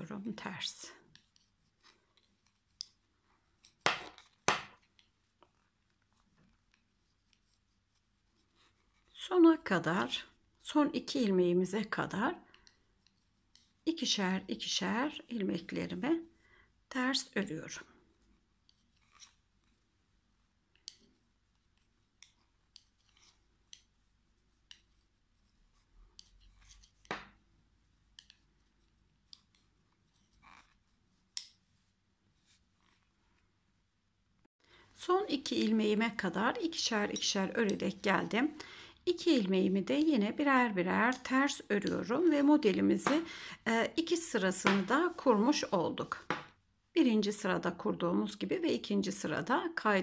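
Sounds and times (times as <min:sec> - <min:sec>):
knitting needles clicking: 0:01.1 - 0:03.0, 0:20.7 - 0:23.9, 0:24.6 - 0:25.0, 0:26.1 - 0:27.4, 0:28.1 - 0:31.6, 0:35.3 - 0:38.6, 0:41.0 - 0:43.3.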